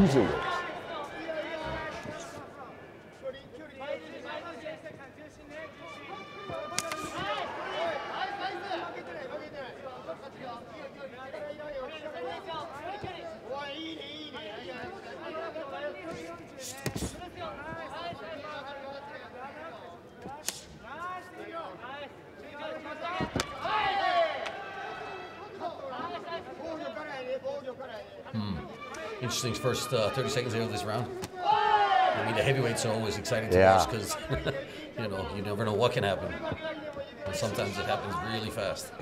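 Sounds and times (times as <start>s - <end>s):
voices shouting: 31.4s - 32.9s.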